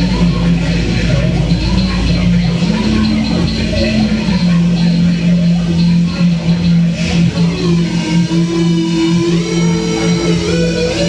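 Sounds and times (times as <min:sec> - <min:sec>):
higher gliding tone: 0:00.0 - 0:11.0
low electronic drone: 0:00.0 - 0:11.0.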